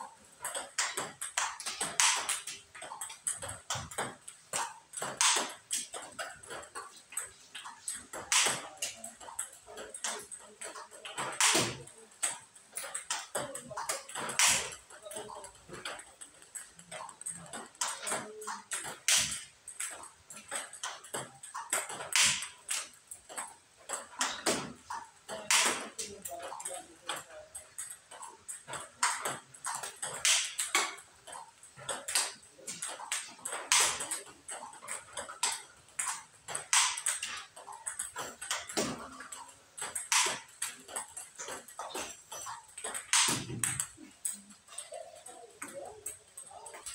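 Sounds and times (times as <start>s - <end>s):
table tennis ball clicks: 0.1s - 46.9s.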